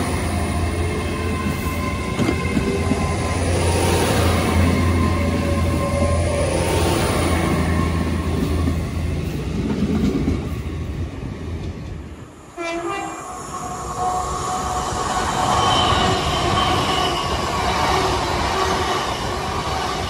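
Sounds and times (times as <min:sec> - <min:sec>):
train running drone: 0:00.0 - 0:20.0
train horn blast: 0:12.5 - 0:14.7.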